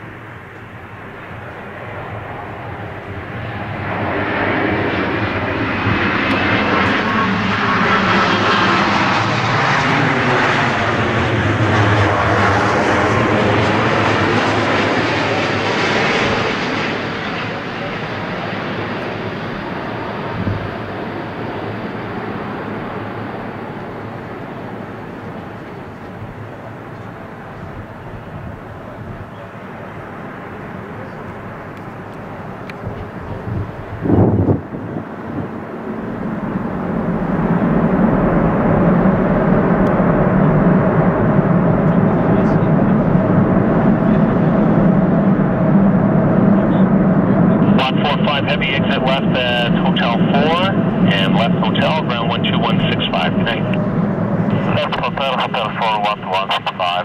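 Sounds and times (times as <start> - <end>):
jet engines passing low: 0.0 - 57.0.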